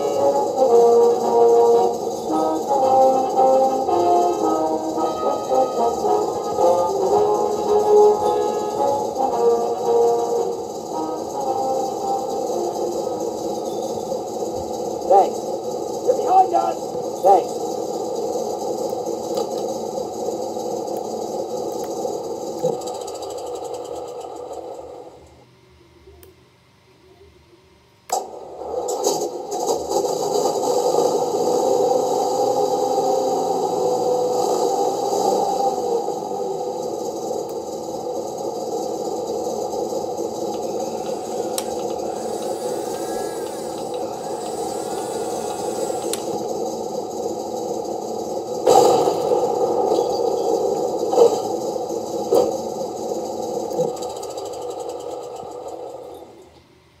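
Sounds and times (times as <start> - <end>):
simulated tank engine from speaker: 14.8 - 18.0.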